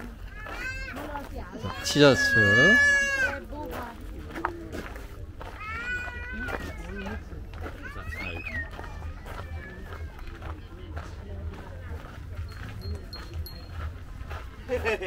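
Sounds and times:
voices and calls: 0.0s - 4.6s, 5.2s - 15.0s.

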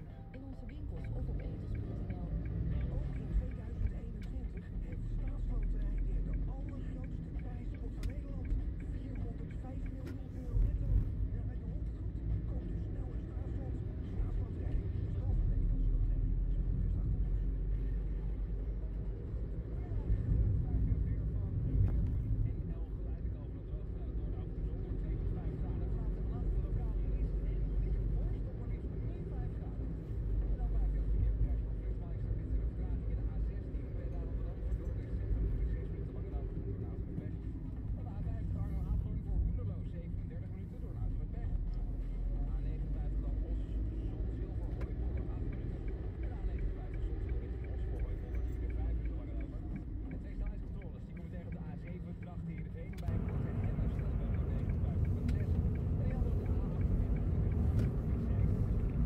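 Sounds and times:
car engine and tyre rumble: 0.0s - 59.0s.

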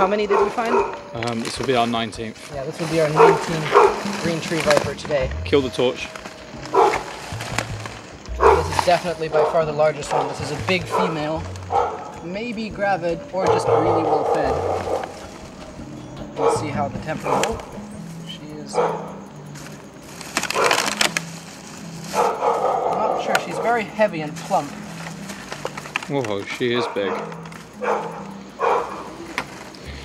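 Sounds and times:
plastic bottles crinkling: 0.0s - 18.2s, 19.5s - 30.0s
dog barking: 0.2s - 1.1s, 3.1s - 4.1s, 6.7s - 7.1s, 8.4s - 12.1s, 13.4s - 15.3s, 16.4s - 17.7s, 18.7s - 19.2s, 20.5s - 20.9s, 22.1s - 23.7s, 26.8s - 29.2s
low hum: 5.0s - 9.3s.

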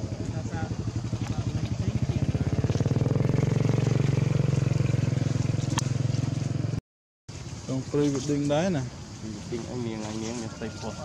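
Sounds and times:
small engine running: 0.0s - 6.8s.

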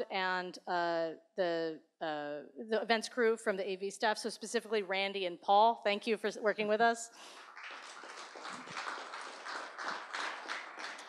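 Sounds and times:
audience applauding: 7.2s - 11.0s.

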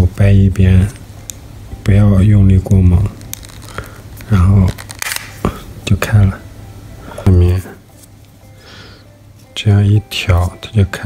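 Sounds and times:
person speaking: 1.7s - 3.3s, 4.2s - 8.0s, 9.4s - 11.0s
plastic case snapping open: 4.7s - 5.4s.

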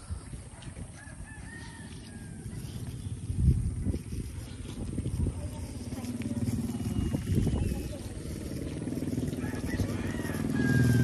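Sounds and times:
distant rooster crowing: 0.9s - 2.6s, 9.3s - 11.0s.

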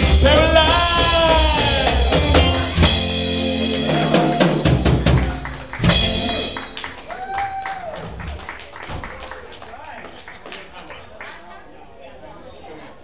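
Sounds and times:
rock and roll band playing: 0.0s - 8.3s.

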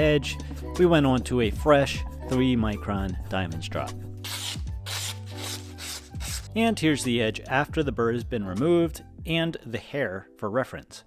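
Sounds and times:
knife rasping on strop: 4.2s - 6.5s.

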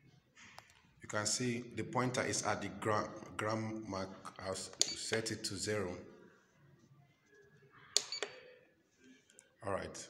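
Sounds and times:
high electronic beep: 8.0s - 8.4s.

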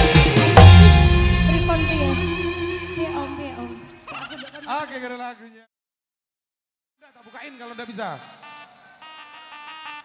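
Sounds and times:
live band music: 0.0s - 4.0s
voice-like logo jingle: 0.6s - 4.0s.

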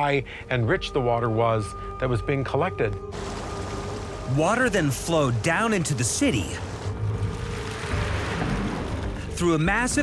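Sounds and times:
water rushing over rock: 3.1s - 9.1s.

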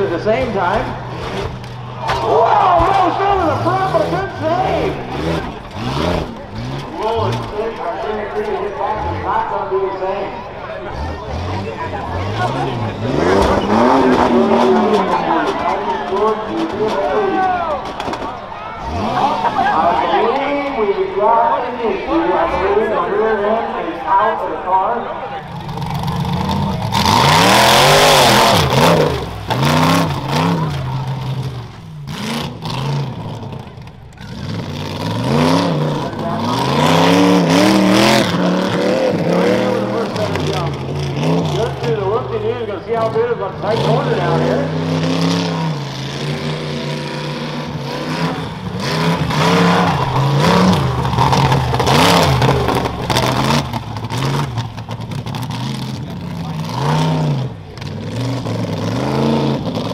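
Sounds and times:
buggy engine revving: 0.0s - 59.9s.

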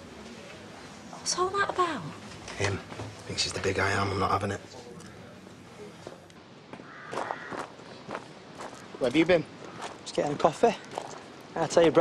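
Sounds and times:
man's footsteps: 6.0s - 10.2s.

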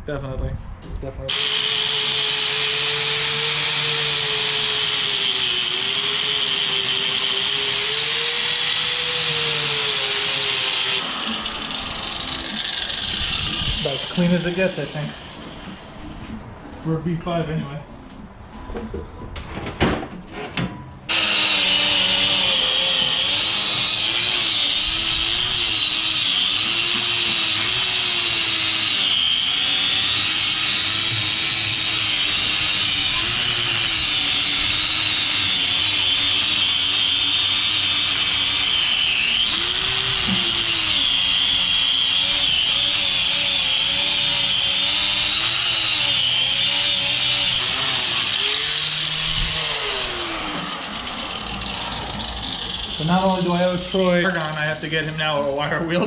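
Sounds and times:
angle grinder with wire wheel on metal: 1.3s - 15.7s, 21.1s - 56.0s.

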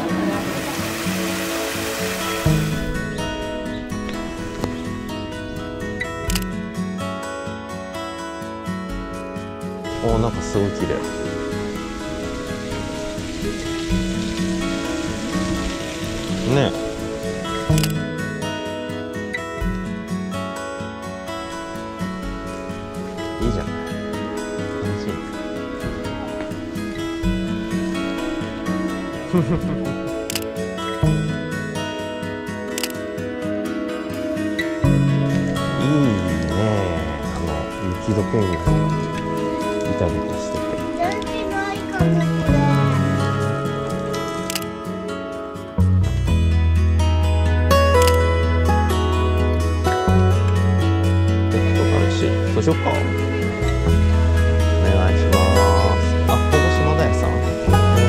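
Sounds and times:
waterfall splashing into pond: 0.0s - 2.8s, 11.7s - 17.2s
background music melody: 0.0s - 58.0s.

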